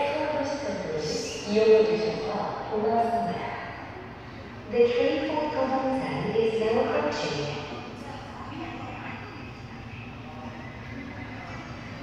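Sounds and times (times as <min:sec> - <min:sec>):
subway train rumble: 0:00.0 - 0:12.0.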